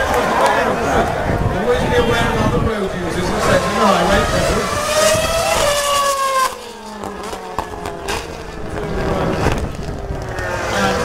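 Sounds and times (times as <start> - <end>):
race car engine passing: 1.8 - 11.0.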